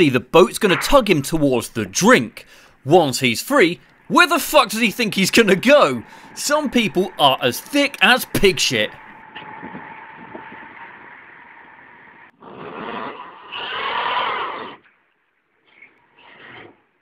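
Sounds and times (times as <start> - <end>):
engine whining under load: 3.8 - 12.3.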